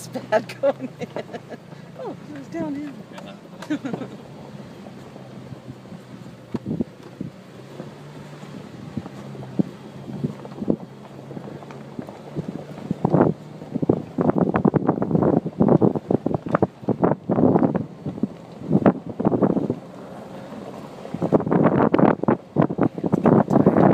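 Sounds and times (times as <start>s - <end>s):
car engine humming: 0.0s - 23.9s
wind buffeting microphone: 3.8s - 23.9s.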